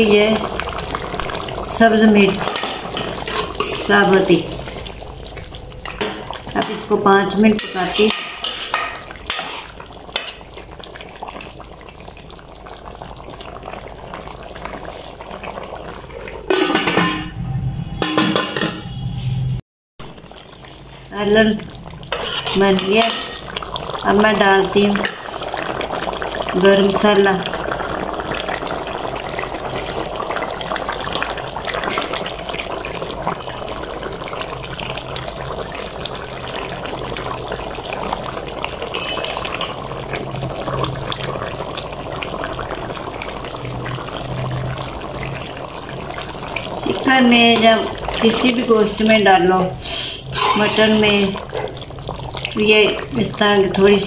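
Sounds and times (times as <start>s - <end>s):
curry bubbling in a pot: 0.0s - 17.1s, 20.0s - 54.0s
metal pot clatter: 16.4s - 17.3s, 18.0s - 18.9s, 22.1s - 23.6s, 50.3s - 51.8s.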